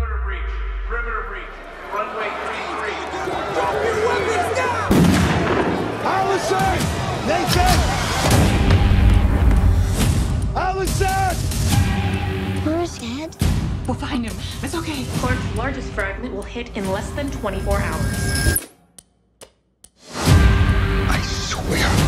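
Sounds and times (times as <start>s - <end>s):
trailer music: 0.0s - 22.0s
many voices shouting: 1.5s - 4.9s, 5.7s - 9.3s.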